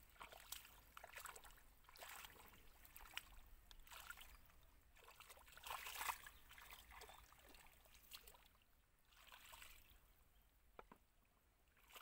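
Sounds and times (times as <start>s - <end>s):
wading through shallow water: 0.0s - 10.3s, 11.6s - 12.0s.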